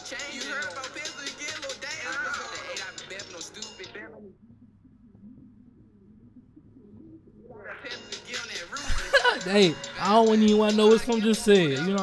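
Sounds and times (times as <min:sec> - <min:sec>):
muffled rap music: 0:00.0 - 0:04.4, 0:07.4 - 0:12.0.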